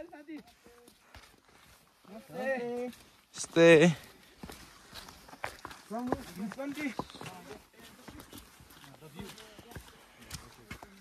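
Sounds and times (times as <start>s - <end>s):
footsteps on stone trail: 0.0s - 11.0s.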